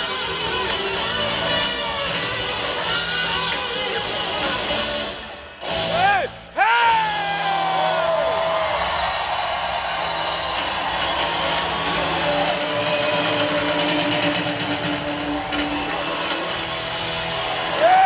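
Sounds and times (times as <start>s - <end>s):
crowd noise: 0.0s - 18.0s
live rock band playing: 0.0s - 18.0s.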